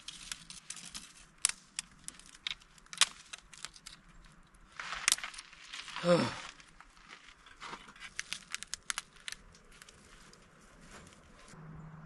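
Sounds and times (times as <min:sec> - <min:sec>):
dry twigs snapping: 0:00.0 - 0:10.5.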